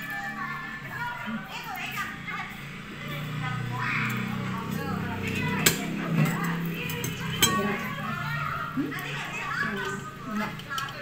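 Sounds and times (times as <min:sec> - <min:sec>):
indistinct voices with children: 0:00.0 - 0:11.0.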